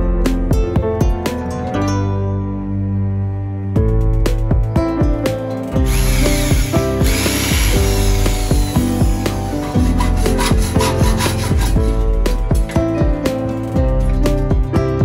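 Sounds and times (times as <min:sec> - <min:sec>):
instrumental music: 0:00.0 - 0:15.0
wood being sanded: 0:05.8 - 0:12.4.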